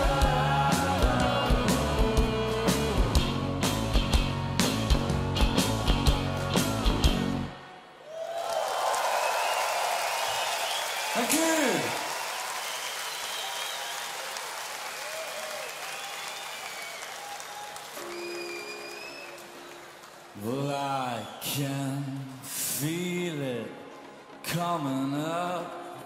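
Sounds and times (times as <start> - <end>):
crowd applauding and cheering: 5.4 - 23.3
whistles from crowd: 9.0 - 11.4, 12.2 - 20.0, 20.8 - 22.2
man speaking over pa: 11.2 - 12.0.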